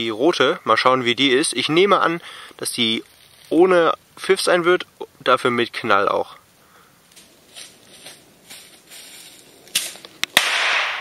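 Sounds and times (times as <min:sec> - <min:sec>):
fuse crackling: 0:00.0 - 0:11.0
loud sharp bang: 0:10.4 - 0:11.0.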